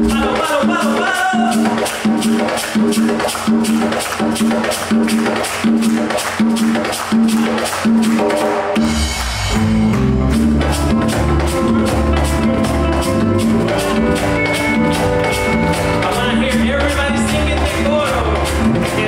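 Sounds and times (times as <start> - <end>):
high percussion strokes: 0.0 - 19.0
live band playing: 0.0 - 19.0
deep bass notes: 8.8 - 19.0.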